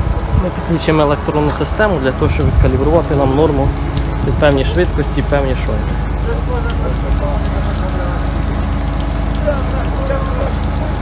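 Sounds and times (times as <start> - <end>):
engine idling: 0.0 - 11.0
faint voices talking: 0.3 - 11.0.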